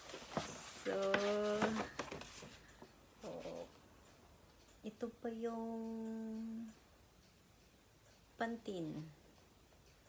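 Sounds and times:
paper gift bag rustling: 0.0 - 2.6.

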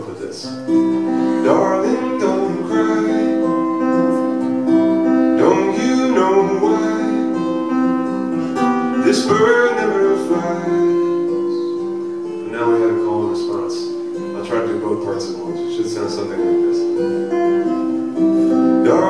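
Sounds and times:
acoustic guitar chords: 0.0 - 19.0
man singing: 1.1 - 7.9, 8.6 - 17.0, 18.8 - 19.0.

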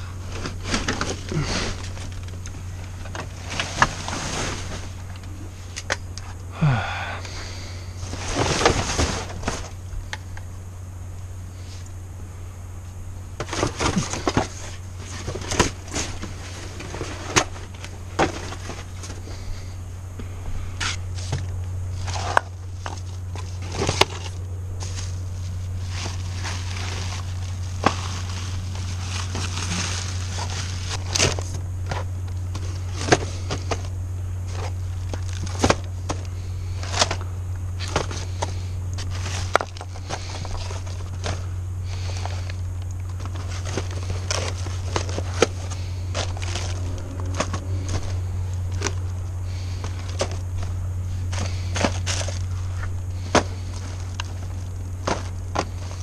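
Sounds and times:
cardboard rustling and scraping: 0.0 - 5.8, 8.0 - 9.9, 13.4 - 19.6, 20.8 - 56.0
steady low hum: 0.0 - 56.0.

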